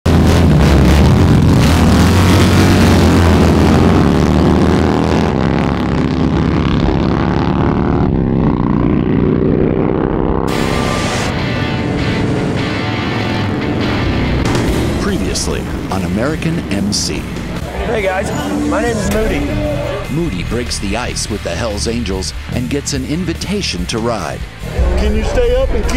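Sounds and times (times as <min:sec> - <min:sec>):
motorcycle engines pulling away: 0:00.1 - 0:25.9
music: 0:10.5 - 0:25.9.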